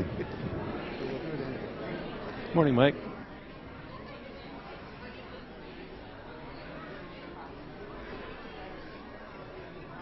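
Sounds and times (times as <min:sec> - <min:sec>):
murmur of many conversations: 0:00.0 - 0:10.0.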